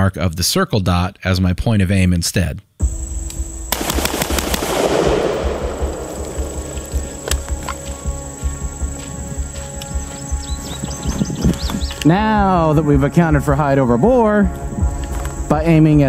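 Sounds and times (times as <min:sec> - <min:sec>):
background music: 0:02.8 - 0:16.0
rapid rifle shots: 0:03.7 - 0:07.4.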